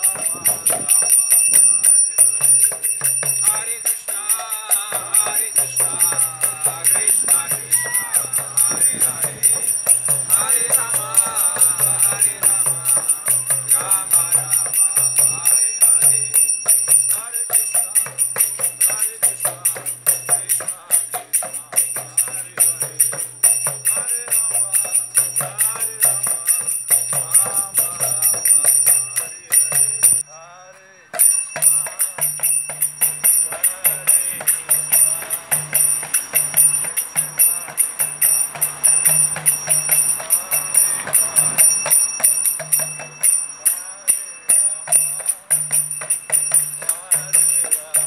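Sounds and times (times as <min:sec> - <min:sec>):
brass hand cymbals ringing: 0:00.0 - 0:30.3, 0:31.1 - 0:48.0
voices chanting: 0:00.0 - 0:48.0
hand drum: 0:05.0 - 0:14.0.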